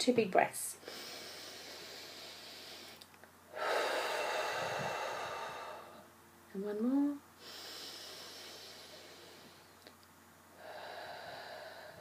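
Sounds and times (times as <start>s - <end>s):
woman breathing deeply: 0.8s - 6.1s, 7.4s - 9.9s, 10.5s - 12.0s.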